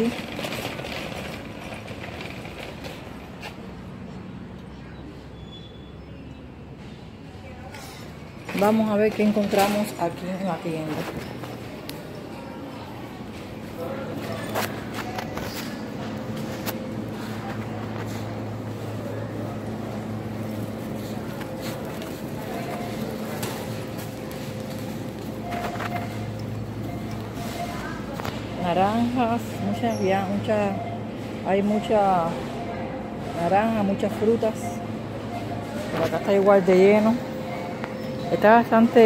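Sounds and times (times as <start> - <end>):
shopping cart clicks and rattles: 0.0 - 3.6, 7.8 - 11.5, 14.2 - 30.7
faint voices of shoppers: 0.0 - 39.0.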